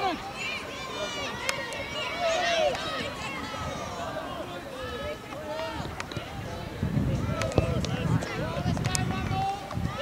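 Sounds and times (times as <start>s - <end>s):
people shouting: 0.0s - 5.9s.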